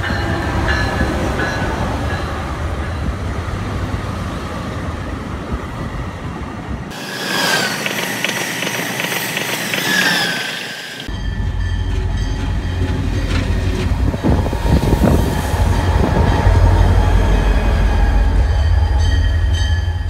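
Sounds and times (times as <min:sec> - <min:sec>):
diesel locomotive engine rumble: 0:00.0 - 0:20.0
electric train passing at speed: 0:00.0 - 0:20.0
rapid rail clicks: 0:07.3 - 0:11.1
whining tones gliding in pitch: 0:09.7 - 0:20.0.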